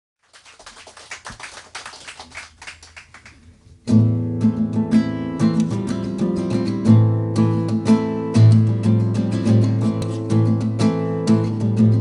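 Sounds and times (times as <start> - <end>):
small audience clapping: 0.2 - 3.6.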